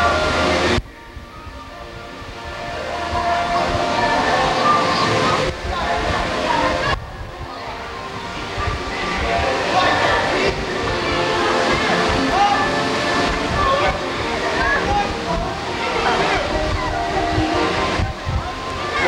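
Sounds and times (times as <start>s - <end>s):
water splashing in a pool: 0.0s - 19.0s
children shouting: 2.6s - 19.0s.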